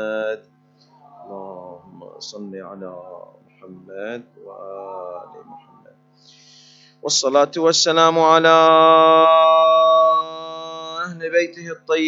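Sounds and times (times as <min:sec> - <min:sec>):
man chanting a long note: 0:01.0 - 0:05.9, 0:07.0 - 0:12.0.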